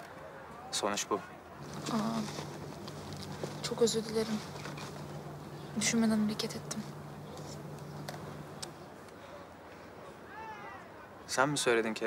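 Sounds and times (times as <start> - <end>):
low steady hum: 1.6 - 9.3.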